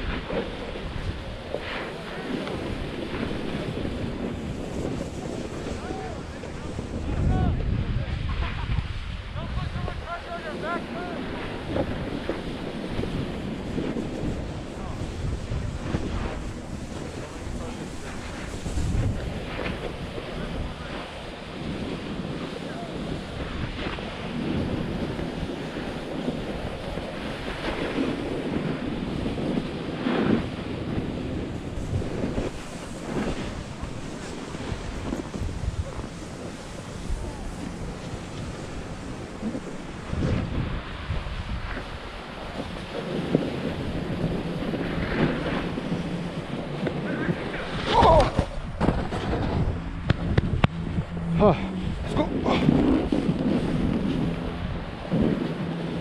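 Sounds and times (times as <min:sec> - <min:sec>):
wind rushing over microphone: 0:00.0 - 0:56.0
skis scraping on packed snow: 0:31.9 - 0:37.4.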